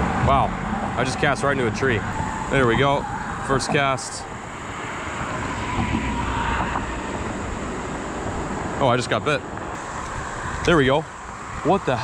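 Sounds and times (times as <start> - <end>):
highway traffic rumble: 0.0 - 12.0.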